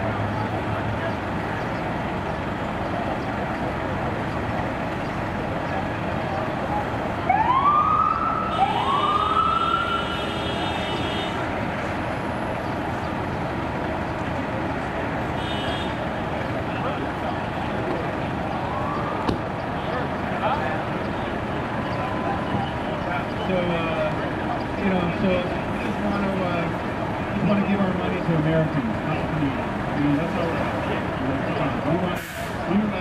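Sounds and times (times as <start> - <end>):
street traffic: 0.0 - 33.0
siren steady high tone: 7.2 - 10.3
siren whoops: 7.3 - 10.2.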